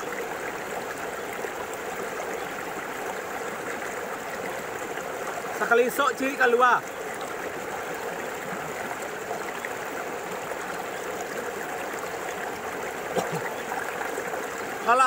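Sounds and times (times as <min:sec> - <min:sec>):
stream flowing: 0:00.0 - 0:15.0.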